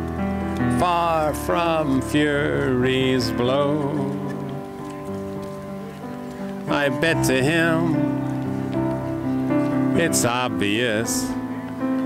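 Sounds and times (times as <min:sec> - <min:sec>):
held instrumental notes: 0:00.0 - 0:12.0.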